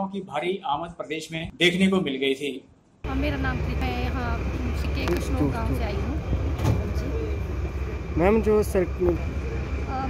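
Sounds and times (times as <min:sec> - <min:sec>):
diesel bus engine idling: 0:03.1 - 0:10.0.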